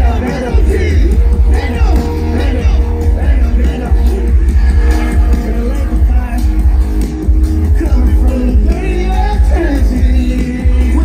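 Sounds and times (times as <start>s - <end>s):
live hip-hop music: 0.0s - 11.0s.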